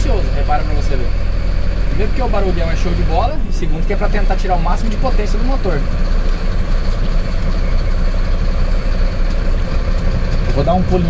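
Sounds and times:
diesel truck engine running: 0.0 - 11.0.

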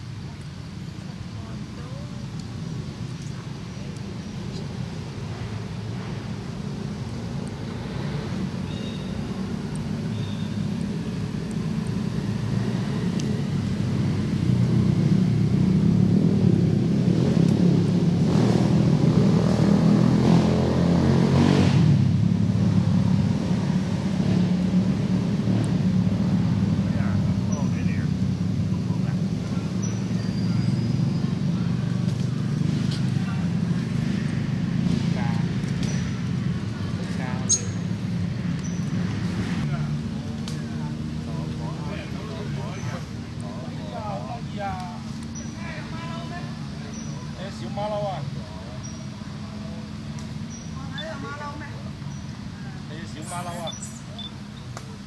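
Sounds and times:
vehicle engine rumbling: 0.0 - 55.0.

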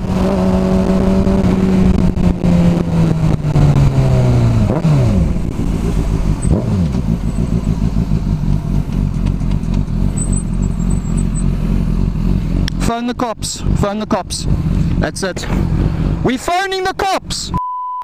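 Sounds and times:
motorcycle engine slowing and downshifting: 0.0 - 16.5.

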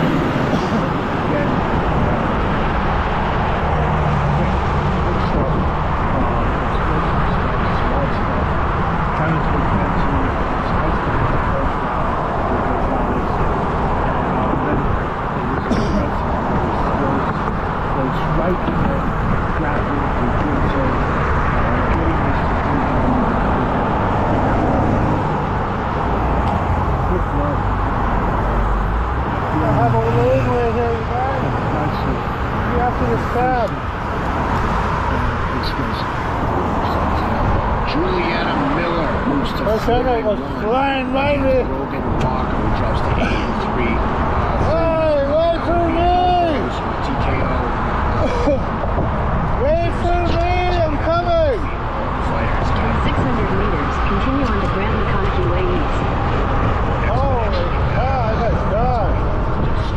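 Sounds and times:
road traffic: 0.0 - 59.9
wind on microphone: 43.6 - 59.9.

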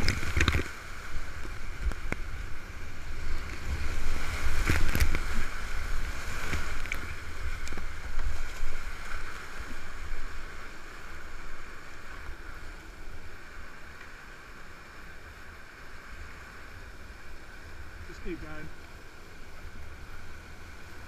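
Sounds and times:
whitewater rushing around kayak: 0.0 - 21.0.

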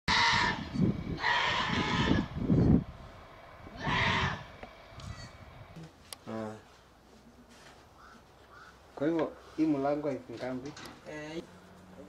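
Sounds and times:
sheep bleating: 0.1 - 2.3
loud low rumbling: 0.1 - 5.8.

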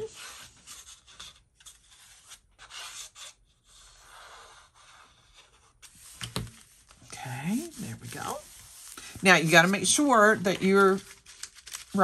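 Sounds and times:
cardstock rustling and scraping: 0.0 - 12.0.

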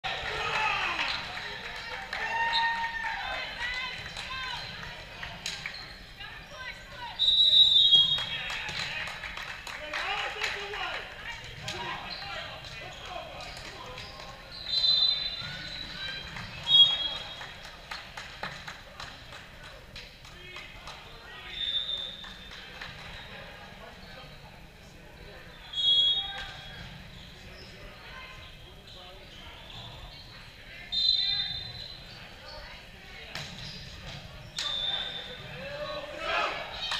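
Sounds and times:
players' voices: 0.0 - 36.9
referee whistle blasts: 7.2 - 8.4, 25.7 - 26.8, 30.9 - 32.0, 34.6 - 35.4.

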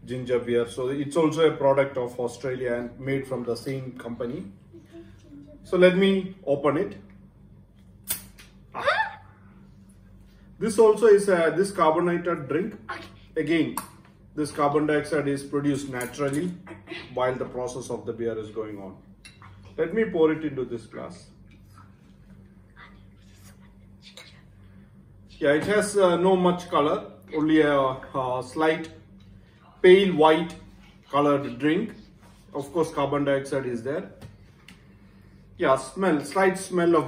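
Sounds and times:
steady low hum: 0.0 - 37.0
bottle cap hiss-pop: 8.0 - 8.5.

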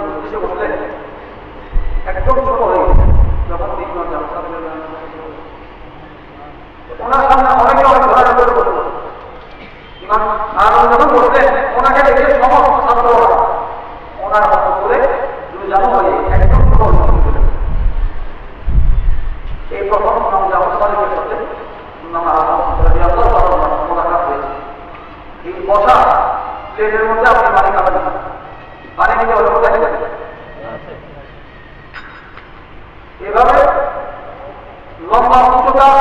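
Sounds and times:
man speaking through microphone: 0.0 - 1.2, 1.8 - 5.5, 6.4 - 9.3, 10.0 - 17.9, 19.6 - 31.4, 33.2 - 36.0
loud low rumble: 1.8 - 3.8.

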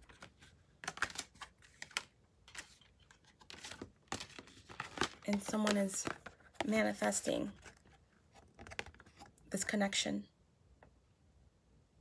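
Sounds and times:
cards clicking and sliding: 0.1 - 6.7.

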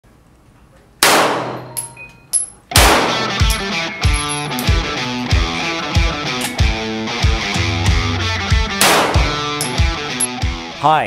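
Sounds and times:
electric guitar rock music: 2.8 - 10.8.

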